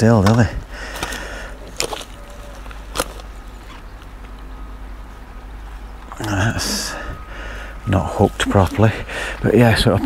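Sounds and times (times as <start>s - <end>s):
low outdoor background noise: 0.0s - 10.0s.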